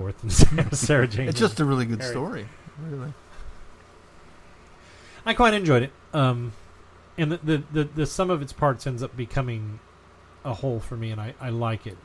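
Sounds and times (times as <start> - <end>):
steady low hum: 0.0 - 12.0
person speaking: 0.9 - 3.2.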